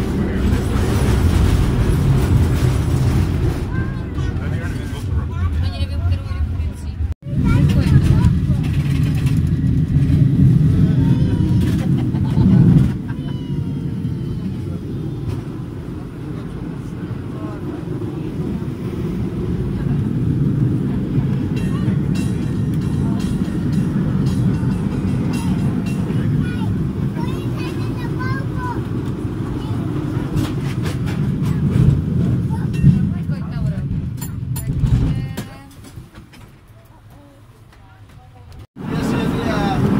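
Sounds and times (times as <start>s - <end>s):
cable car rumbling on track: 0.0s - 39.9s.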